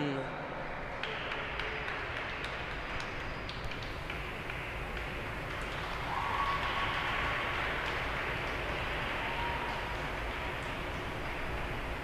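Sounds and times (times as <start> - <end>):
audience applauding: 0.8 - 12.0.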